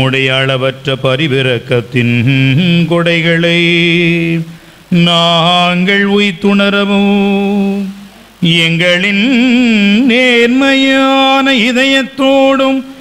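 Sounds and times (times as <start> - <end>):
man chanting a prayer: 0.0 - 13.0.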